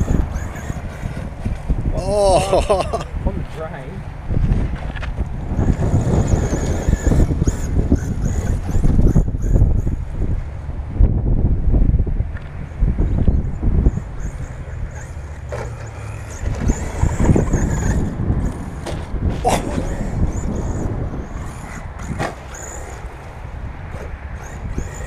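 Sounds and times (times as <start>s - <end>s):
toy truck motor whine: 0.0s - 1.5s, 5.5s - 10.2s, 13.8s - 25.0s
wind buffeting microphone: 0.0s - 25.0s.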